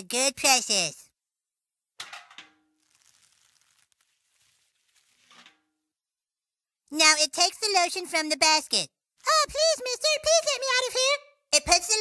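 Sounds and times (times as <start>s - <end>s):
rope creaking: 2.8s - 5.5s
bucket scraping: 2.8s - 5.6s.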